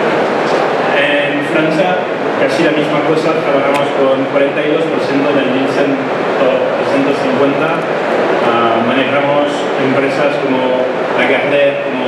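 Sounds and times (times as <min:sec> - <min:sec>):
loud steady rushing noise: 0:00.0 - 0:12.0
man speaking: 0:00.0 - 0:12.0.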